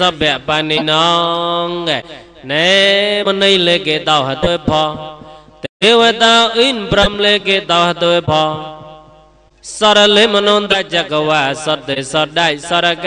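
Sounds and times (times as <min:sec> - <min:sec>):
man chanting: 0:00.0 - 0:08.9, 0:09.6 - 0:13.0.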